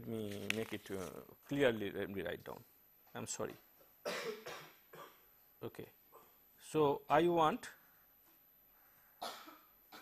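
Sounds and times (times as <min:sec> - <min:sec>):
person coughing: 0:04.0 - 0:05.2, 0:09.2 - 0:10.0.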